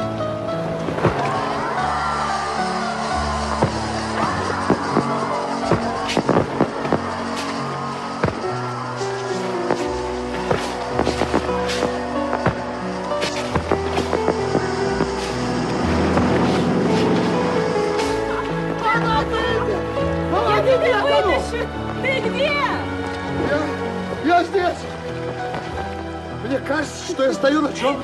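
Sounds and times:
music playing: 0.0s - 28.0s
fireworks popping and crackling: 0.8s - 18.8s.

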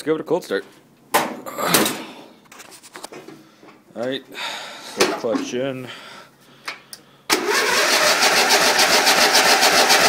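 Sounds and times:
electric starter cranking engine: 7.3s - 10.0s.

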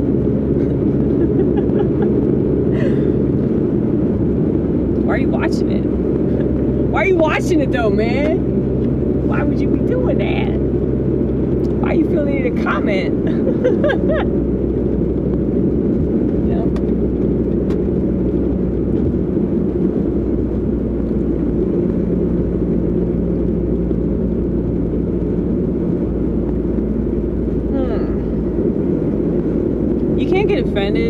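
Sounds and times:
car cabin road and engine rumble: 0.0s - 31.0s.

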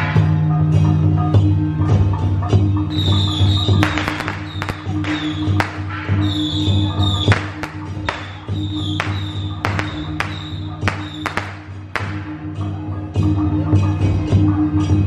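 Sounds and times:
procession music with pulsing beat: 2.9s - 12.4s
sharp cracks: 3.8s - 12.4s.

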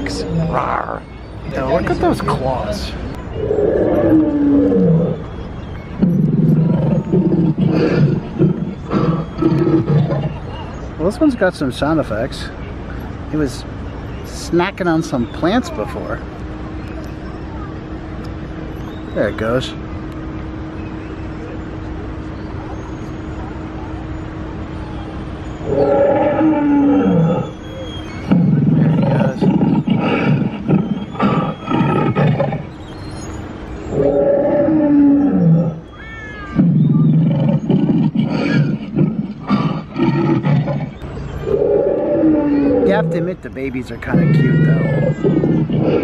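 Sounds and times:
low pulsing growls: 0.0s - 11.1s, 23.8s - 32.8s, 33.8s - 35.9s, 36.5s - 43.4s, 44.0s - 46.0s
car rumbling slowly: 0.0s - 46.0s
recorded dinosaur roar: 3.4s - 5.3s, 6.0s - 10.5s, 25.6s - 27.5s, 28.3s - 32.7s, 33.9s - 35.8s, 36.6s - 43.2s, 44.1s - 46.0s
steady hum: 11.8s - 36.0s.

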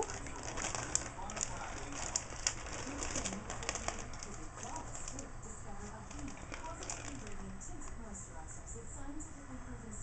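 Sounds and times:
packaging clicks and rustles: 0.0s - 8.0s.

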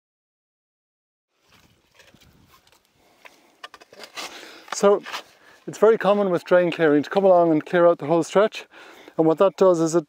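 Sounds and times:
faint outdoor sound: 1.3s - 10.0s.

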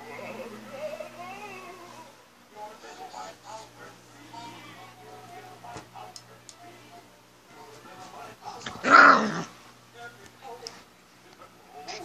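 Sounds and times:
faint background voices or music: 0.0s - 12.0s.

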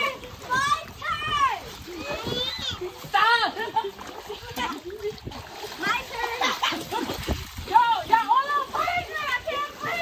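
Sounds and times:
water splashing in pool: 0.0s - 10.0s
people calling out: 7.7s - 10.0s.

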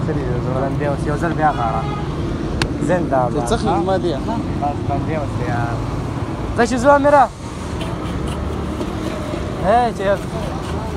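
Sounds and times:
street traffic rumble: 0.0s - 10.9s.

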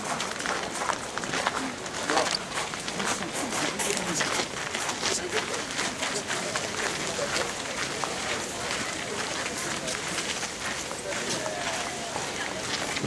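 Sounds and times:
crowd chatter: 0.0s - 13.0s
shuffle of many footsteps: 0.0s - 13.0s.

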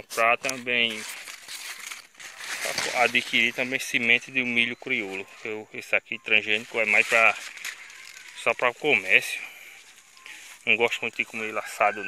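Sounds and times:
corn leaves and stalks rustling: 0.0s - 12.0s.

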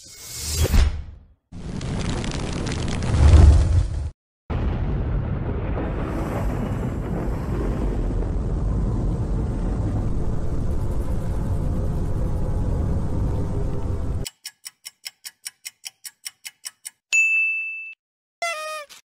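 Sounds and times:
low noisy rumble: 5.7s - 14.2s
countdown timer ticking: 14.3s - 17.0s
bell ding: 17.2s - 18.0s.

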